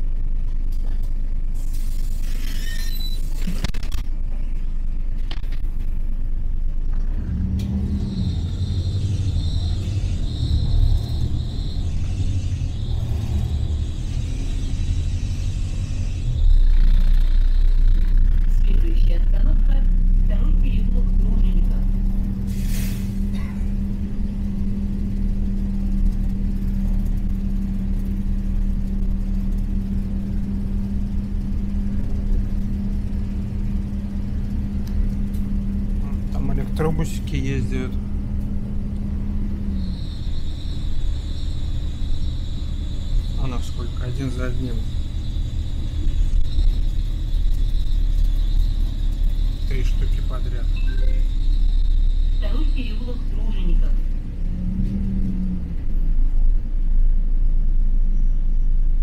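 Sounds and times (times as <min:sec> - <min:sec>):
bus engine and road rumble: 0:00.0 - 0:59.0.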